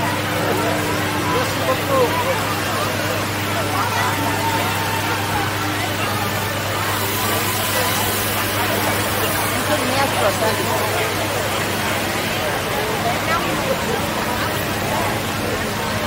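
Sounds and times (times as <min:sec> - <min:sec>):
crowd chatter: 0:00.0 - 0:16.0
low mechanical hum: 0:00.0 - 0:16.0.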